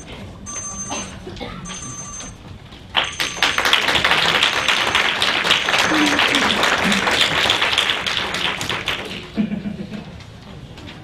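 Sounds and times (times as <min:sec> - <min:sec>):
audience applauding: 0:03.0 - 0:09.4.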